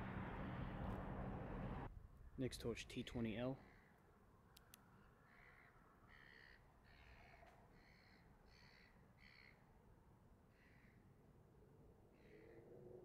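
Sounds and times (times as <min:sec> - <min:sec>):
distant caw-like bird calls: 0:03.6 - 0:04.1, 0:05.0 - 0:09.8, 0:10.4 - 0:11.2, 0:12.1 - 0:12.8.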